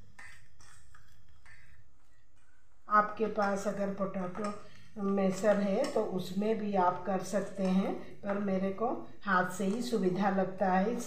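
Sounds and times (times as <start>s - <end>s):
hand squeezing dough in bowl: 0.0s - 8.7s
woman's voice: 2.9s - 11.0s.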